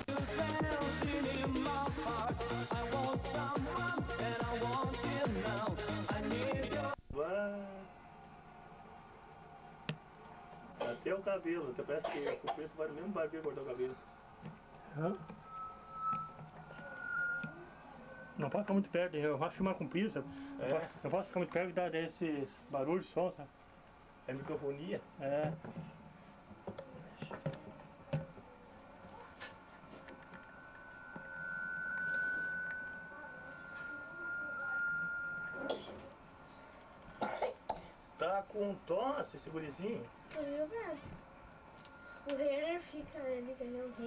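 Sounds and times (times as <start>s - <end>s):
room noise: 0.0s - 44.0s
audio feedback whistling: 13.4s - 19.6s, 29.4s - 37.0s, 41.4s - 42.2s
muffled voices: 24.2s - 44.0s.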